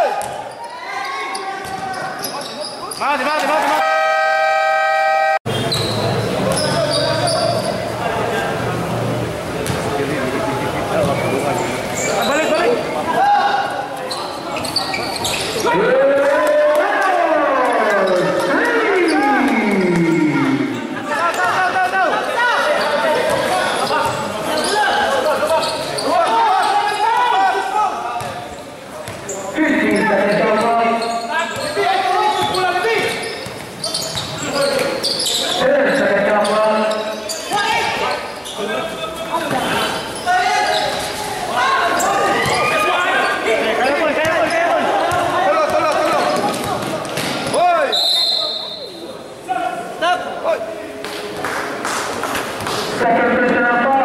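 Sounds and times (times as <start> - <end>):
basketball bouncing on court: 0.2 - 0.4, 1.6 - 1.9, 9.6 - 9.9, 28.2 - 28.4, 44.2 - 47.6
players and spectators shouting: 3.0 - 7.7, 15.5 - 28.2, 39.0 - 48.8
referee whistle blast: 47.9 - 49.0.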